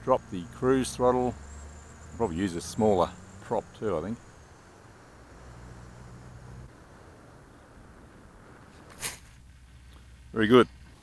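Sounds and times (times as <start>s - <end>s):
faint airflow noise: 0.0s - 11.0s
low hum: 0.0s - 11.0s.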